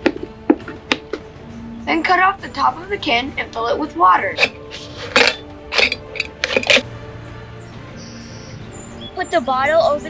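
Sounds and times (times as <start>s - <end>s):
background music: 0.0s - 10.0s
blade cutting aluminium can: 4.4s - 6.8s.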